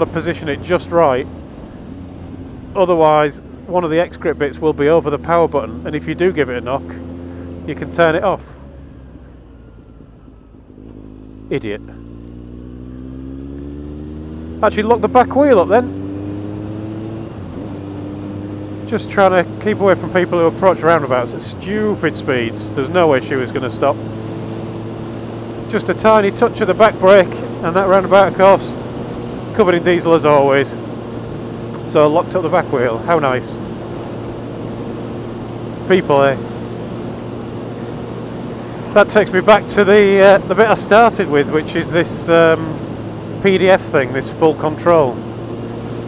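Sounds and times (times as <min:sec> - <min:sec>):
motorcycle engine accelerating: 0:00.0 - 0:46.0.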